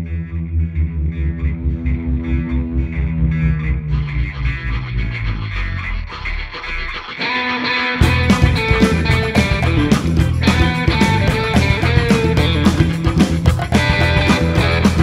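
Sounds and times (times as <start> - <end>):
bass: 0.0 - 7.2, 8.0 - 15.0
electric guitar riff: 0.0 - 15.0
drums: 8.0 - 15.0.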